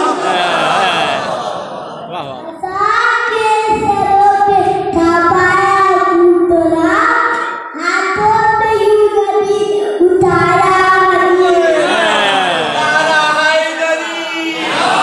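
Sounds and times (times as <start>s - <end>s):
boy singing into a microphone: 2.4s - 12.0s.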